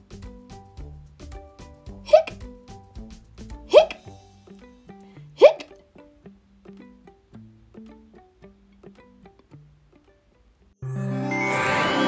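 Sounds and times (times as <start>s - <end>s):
quiet background music: 0.0s - 12.0s
person hiccuping: 2.0s - 2.4s, 3.6s - 4.1s, 5.4s - 5.8s.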